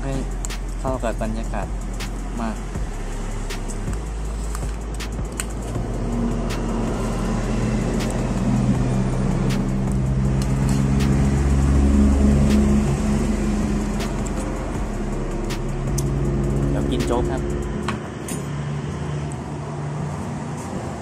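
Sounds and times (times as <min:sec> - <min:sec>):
vehicle engine running: 0:00.0 - 0:21.0.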